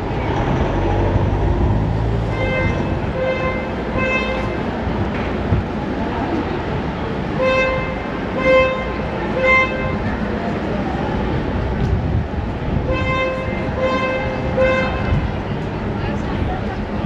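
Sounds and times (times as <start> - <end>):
city street noise: 0.0 - 17.0
short horn beeps: 2.3 - 4.6.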